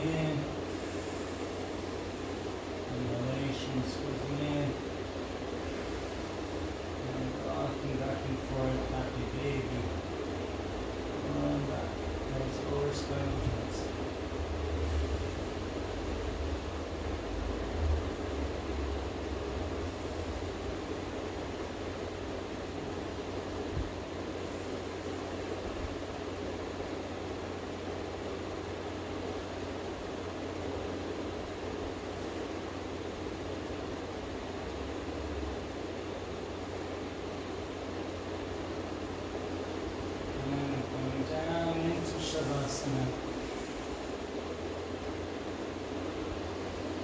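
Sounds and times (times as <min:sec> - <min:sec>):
ceiling fans running: 0:00.0 - 0:47.0.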